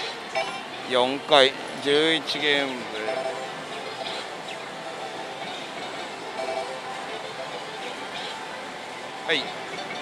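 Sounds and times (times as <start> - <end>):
slot machines din: 0.3 - 0.9, 3.0 - 8.4, 9.3 - 10.0.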